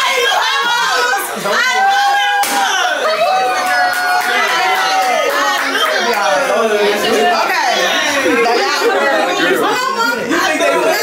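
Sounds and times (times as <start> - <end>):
babble of excited voices: 0.0 - 11.0.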